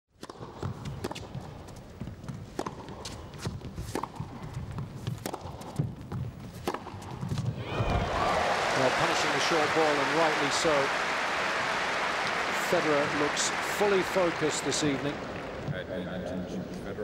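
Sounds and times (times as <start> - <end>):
tennis ball struck by rackets: 0.2 - 1.5, 2.6 - 7.5
crowd hum: 7.6 - 15.8.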